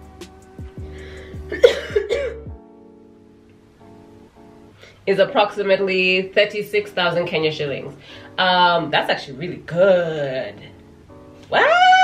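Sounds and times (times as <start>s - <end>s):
music with plucked strings and beat: 0.0s - 2.8s.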